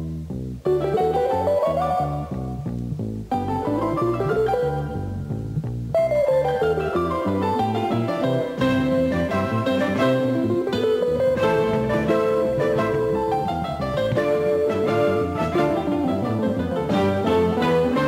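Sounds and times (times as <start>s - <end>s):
double bass: 0.0s - 18.0s
piano: 0.0s - 18.0s.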